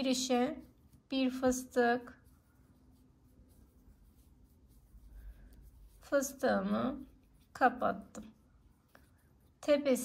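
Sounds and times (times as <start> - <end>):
yarn rubbing with crochet hook: 0.0 - 10.0.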